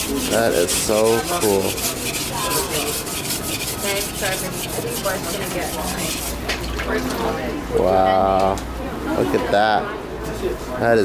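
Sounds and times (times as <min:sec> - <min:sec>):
knife grinding on whetstone: 0:00.0 - 0:06.5.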